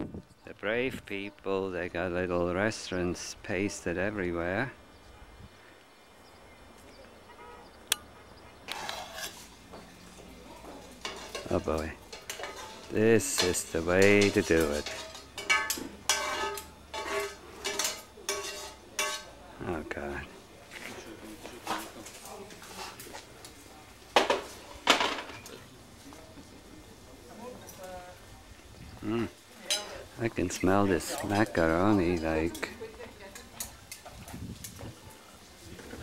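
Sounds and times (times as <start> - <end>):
low hiss: 0.0 - 36.0
metal utensils knocking on plates: 11.0 - 19.3
spoon clattering in metal pan: 11.0 - 19.3.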